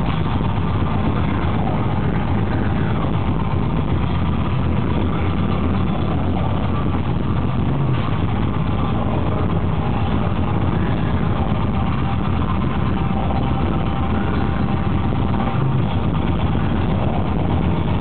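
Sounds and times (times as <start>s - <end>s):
black metal band playing live: 0.0s - 18.0s.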